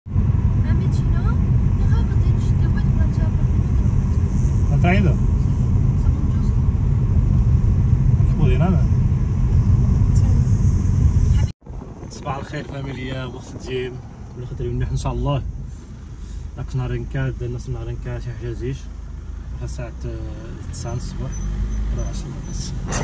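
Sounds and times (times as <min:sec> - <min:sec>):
road and wind noise inside car: 0:00.1 - 0:23.0.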